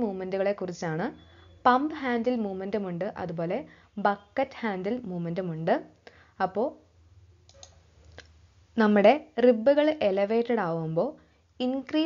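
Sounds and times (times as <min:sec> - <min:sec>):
faint clicks: 0:07.5 - 0:08.4.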